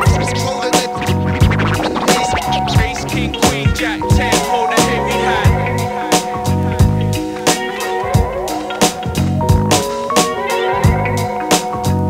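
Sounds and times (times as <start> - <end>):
turntable scratching: 0.0 - 4.3
hip hop beat with drums and bass: 0.0 - 6.4.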